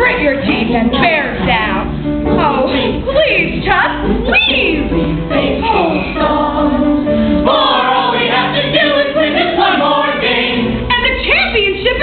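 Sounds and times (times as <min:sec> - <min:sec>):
group of voices singing: 0:04.9 - 0:12.0.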